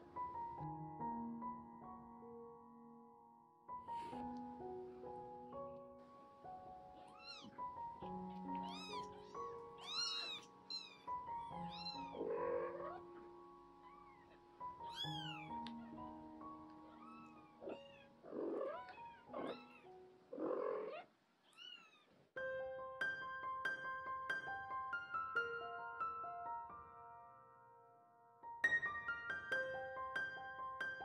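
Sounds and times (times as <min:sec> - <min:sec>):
soft piano music: 0:00.0 - 0:21.0, 0:22.4 - 0:31.0
kitten mewing: 0:07.0 - 0:13.2, 0:13.8 - 0:16.2, 0:16.8 - 0:22.1.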